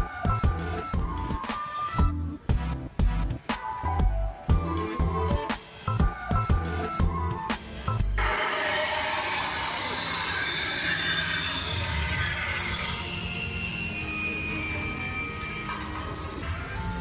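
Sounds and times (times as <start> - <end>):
high squealing tones: 8.2 - 16.5.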